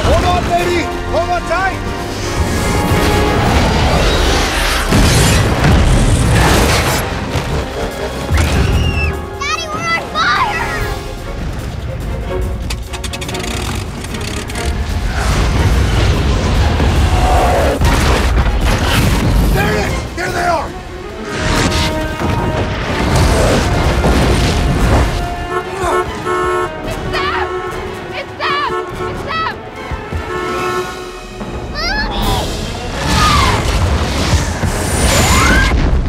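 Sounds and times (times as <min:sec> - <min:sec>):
dramatic orchestral music: 0:00.0 - 0:36.0
people shouting and crying out: 0:31.7 - 0:33.8.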